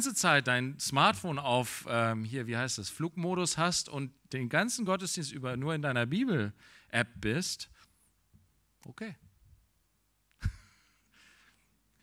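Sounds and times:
man saying okay: 8.9s - 9.2s.

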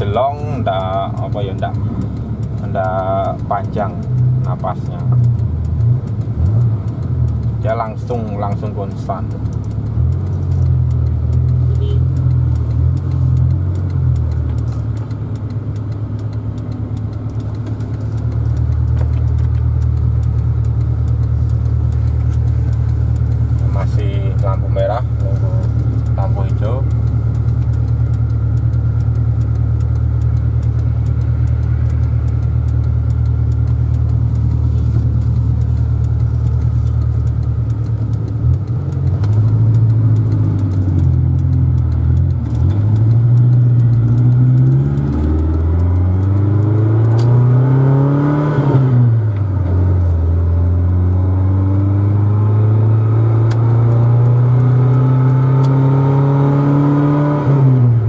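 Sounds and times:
car engine drone inside cabin: 0.0s - 58.0s.

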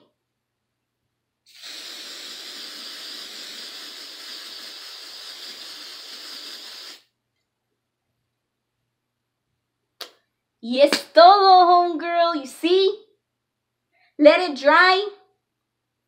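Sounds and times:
aerosol spray hissing: 1.5s - 7.2s.

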